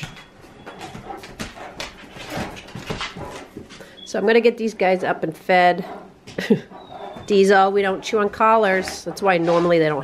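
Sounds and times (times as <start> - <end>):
dog: 0.0 - 4.4, 5.8 - 10.0.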